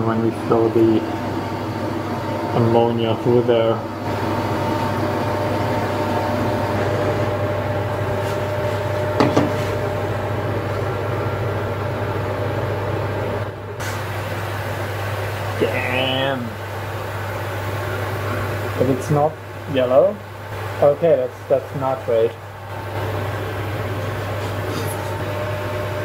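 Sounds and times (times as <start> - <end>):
constant low hum: 0.0 - 26.0
gas torch flame hissing: 13.8 - 19.3, 23.0 - 25.5.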